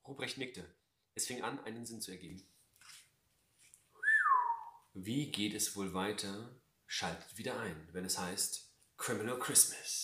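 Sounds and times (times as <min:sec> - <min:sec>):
whistled gliding note: 0:04.0 - 0:04.8.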